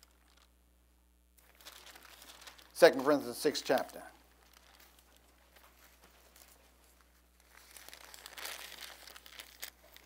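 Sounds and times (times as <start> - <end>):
thin pages rustling: 1.4 - 10.0.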